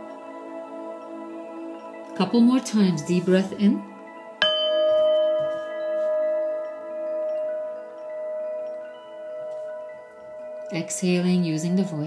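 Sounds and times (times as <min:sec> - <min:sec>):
singing bowl ringing: 0:04.1 - 0:12.0.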